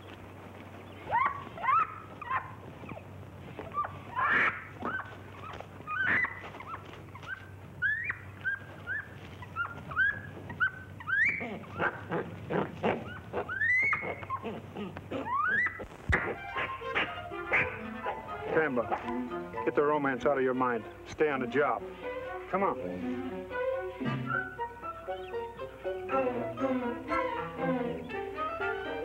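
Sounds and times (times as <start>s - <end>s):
chimpanzee squeaks and hoots: 1.1s - 3.0s, 3.7s - 19.0s, 24.0s - 25.5s.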